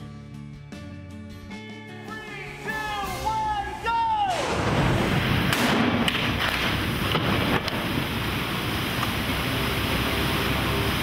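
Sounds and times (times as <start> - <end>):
water rushing out of a pipe: 6.2 - 11.0.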